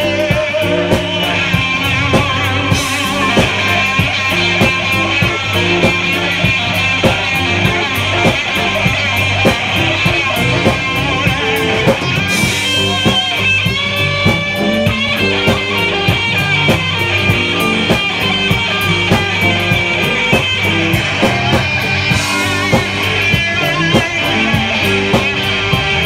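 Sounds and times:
drum kit steady beat: 0:00.0 - 0:26.0
electric guitar: 0:00.0 - 0:26.0.

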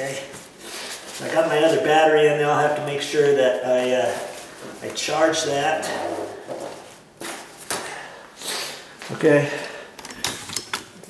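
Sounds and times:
nylon bag rustling and scraping: 0:03.8 - 0:07.0.

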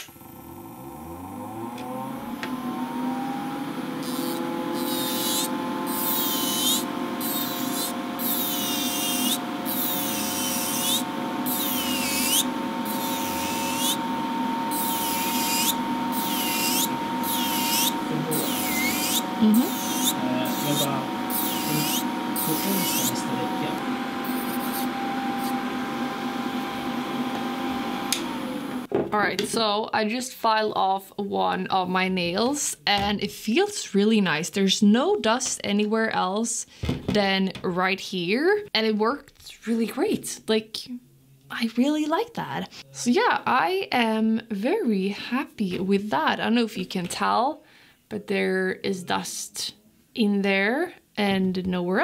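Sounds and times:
electric nail drill whining: 0:00.0 - 0:28.9
drill bit grinding on nail: 0:04.0 - 0:25.7.

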